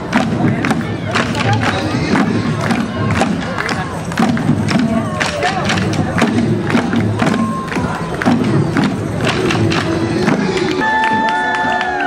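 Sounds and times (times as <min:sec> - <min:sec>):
parade music with percussive beat: 0:00.0 - 0:11.9
crowd noise: 0:00.0 - 0:12.0.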